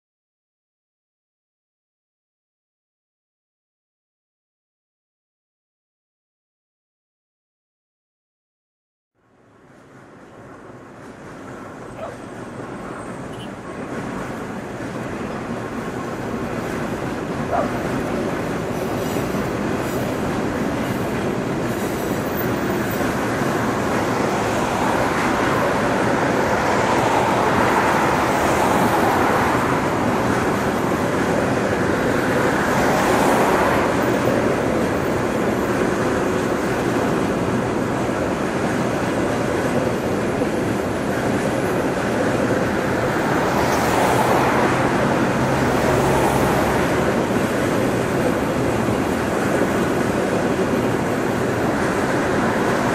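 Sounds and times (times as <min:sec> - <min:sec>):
passing passenger train: 0:09.2 - 0:52.9
wheels rumbling on rails: 0:09.2 - 0:52.9.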